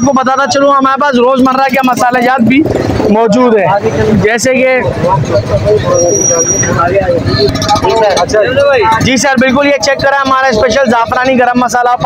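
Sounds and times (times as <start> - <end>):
busy street market noise: 0.0 - 12.0
men talking: 0.0 - 12.0
traffic: 0.0 - 12.0.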